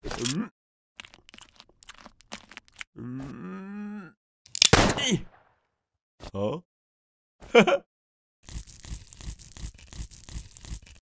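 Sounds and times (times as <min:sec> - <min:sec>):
cartoon crunches and clicks: 0:00.0 - 0:03.0, 0:04.5 - 0:05.0, 0:08.4 - 0:11.0
low groaning voice: 0:00.2 - 0:00.5, 0:03.0 - 0:04.2, 0:06.2 - 0:06.7.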